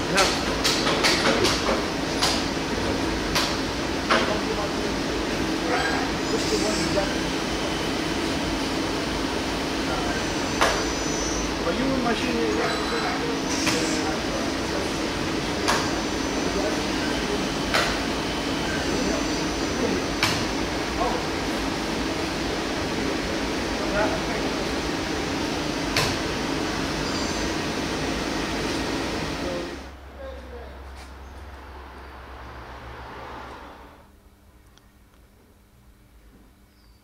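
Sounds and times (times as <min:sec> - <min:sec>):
lathe whirring: 0:00.0 - 0:30.0.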